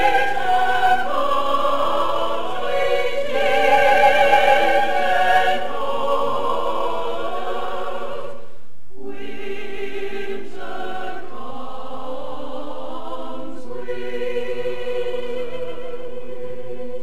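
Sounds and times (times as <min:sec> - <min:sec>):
choir singing sustained chords: 0:00.0 - 0:17.0.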